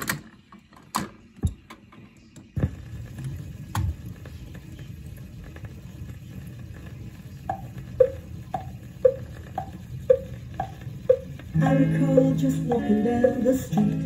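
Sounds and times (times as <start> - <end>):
record crackle and rumble: 2.5 - 11.6.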